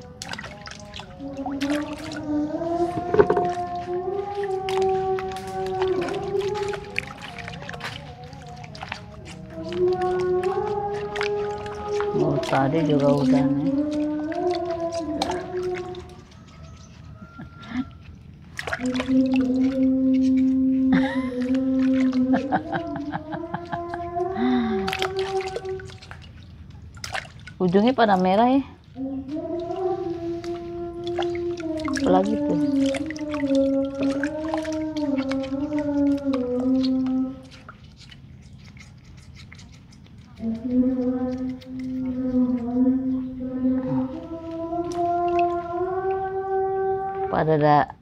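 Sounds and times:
woman humming a long note: 0.0 - 16.2, 18.8 - 26.0, 29.0 - 37.4, 40.4 - 47.8
water splashing in a bucket: 0.0 - 48.0.

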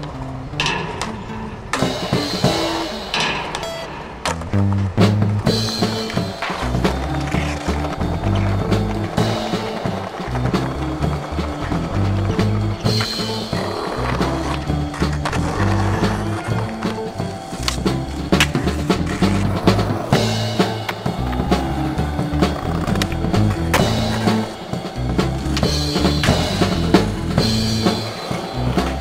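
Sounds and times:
skateboard wheels rolling: 0.0 - 29.0
music with bass line: 3.7 - 29.0
skateboard knocking on concrete: 4.3 - 20.1.

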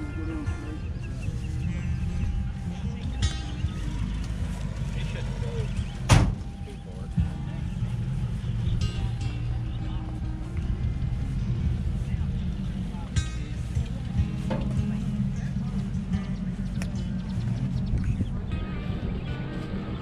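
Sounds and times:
background music: 0.0 - 20.0
distant voices: 0.0 - 20.0
steady low rumble: 0.0 - 20.0.

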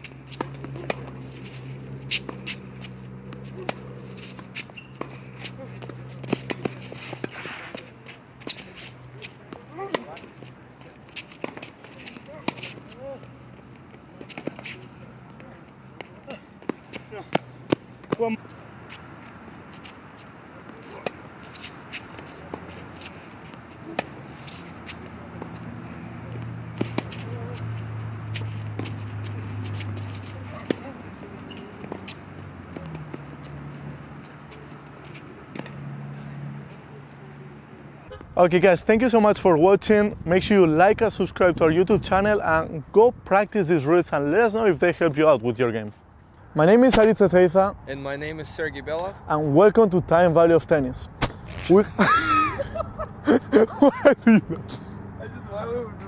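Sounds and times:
shoe scuffs and squeaks: 0.0 - 10.3, 27.0 - 32.3
tennis ball pops off racket: 51.2 - 51.6.

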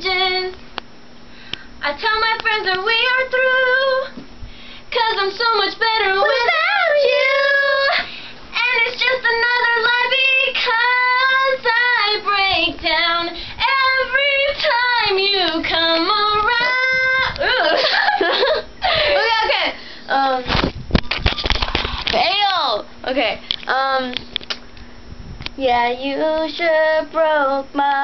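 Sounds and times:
girl singing unaccompanied: 0.0 - 0.6, 1.8 - 4.2, 4.9 - 17.8, 25.6 - 28.0.

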